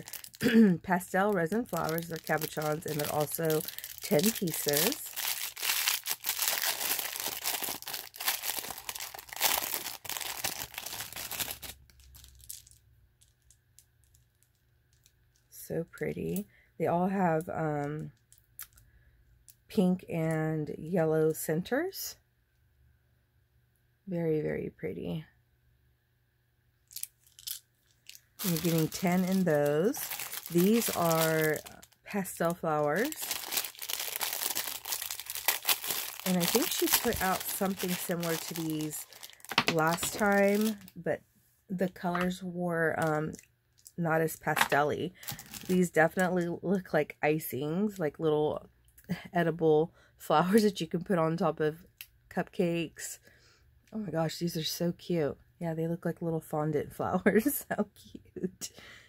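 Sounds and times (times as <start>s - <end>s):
plastic bag crinkling: 0.0s - 14.6s, 26.9s - 41.1s, 43.0s - 46.4s.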